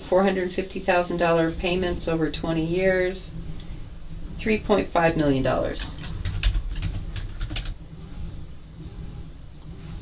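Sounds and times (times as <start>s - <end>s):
low hum: 0.0s - 10.0s
keyboard typing: 5.2s - 7.8s.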